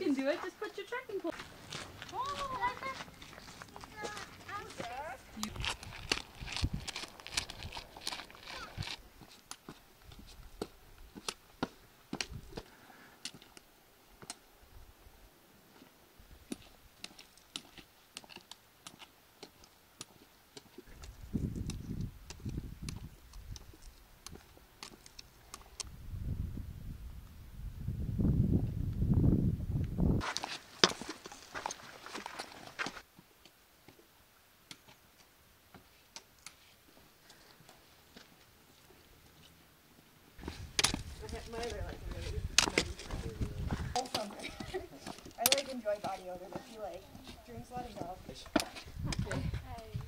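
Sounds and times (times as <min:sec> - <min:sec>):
people talking: 0:00.0 - 0:01.4, 0:02.1 - 0:05.6, 0:41.2 - 0:50.0
footsteps on rocky trail: 0:00.0 - 0:13.6, 0:15.7 - 0:25.8, 0:30.2 - 0:34.1, 0:34.7 - 0:39.5, 0:40.4 - 0:50.0
trekking poles tapping: 0:40.4 - 0:43.3, 0:43.9 - 0:49.9.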